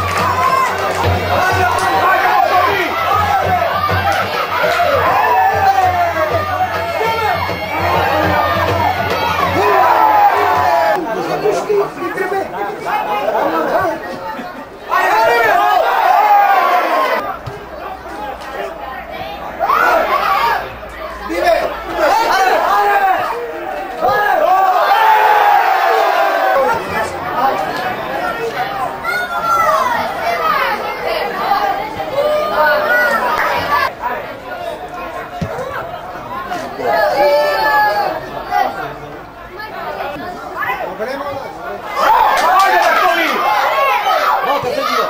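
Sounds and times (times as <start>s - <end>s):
crowd voices talking and calling out: 0.0s - 45.0s.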